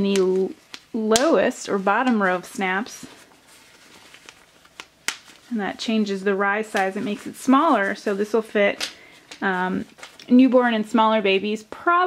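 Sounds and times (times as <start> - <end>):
cloth rustling: 0.0 - 10.9.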